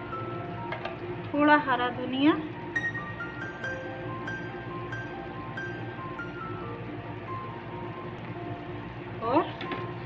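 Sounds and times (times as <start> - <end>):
background music with held notes: 0.0 - 10.0.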